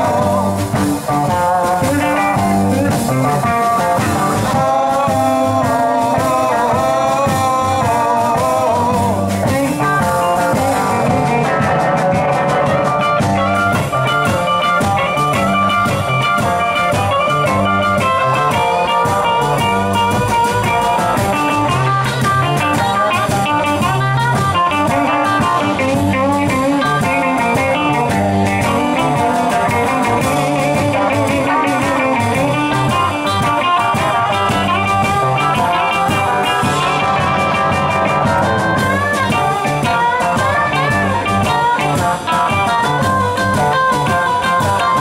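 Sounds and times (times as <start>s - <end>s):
blues band playing: 0.0s - 45.0s
double bass: 0.0s - 45.0s
drum kit with cymbals: 0.0s - 45.0s
electric guitars: 0.0s - 45.0s.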